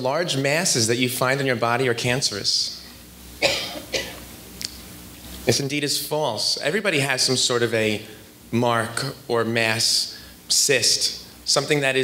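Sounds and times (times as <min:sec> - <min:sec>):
person coughing: 0:03.4 - 0:04.3.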